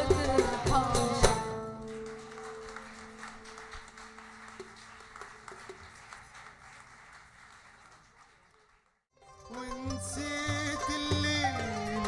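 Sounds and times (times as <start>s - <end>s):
faint audience applause: 0.5s - 9.9s.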